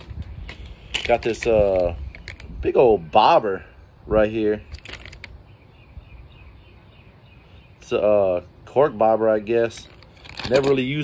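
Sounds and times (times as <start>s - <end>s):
plastic bag crinkling: 4.6s - 5.3s, 9.8s - 10.9s.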